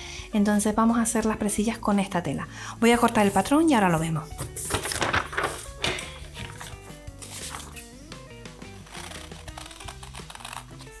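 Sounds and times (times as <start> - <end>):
background music with stepping notes: 0.9 - 11.0.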